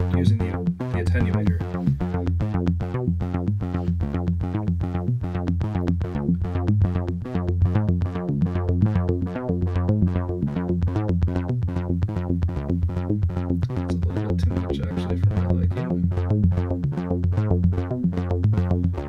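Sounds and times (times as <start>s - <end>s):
low bass tone: 0.0s - 19.0s.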